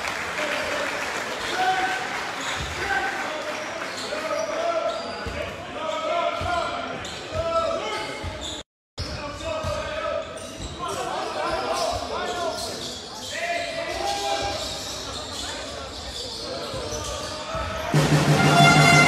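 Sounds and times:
shoe squeals: 3.6s - 17.9s.

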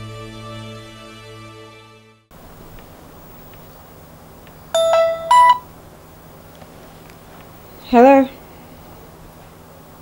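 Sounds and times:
two-note phone chime: 4.8s - 5.7s.

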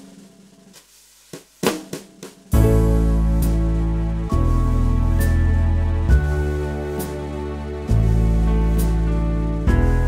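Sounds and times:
snare and kick drum strokes: 0.0s - 3.6s.

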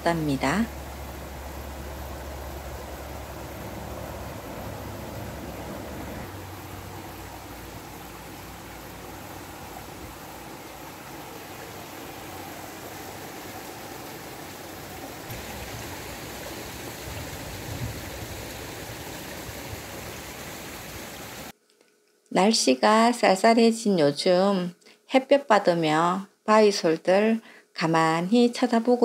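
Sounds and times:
rushing hiss: 0.7s - 21.5s.

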